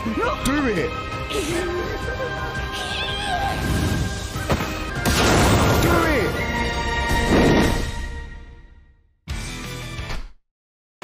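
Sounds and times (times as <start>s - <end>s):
sustained soundtrack music: 0.0s - 10.0s.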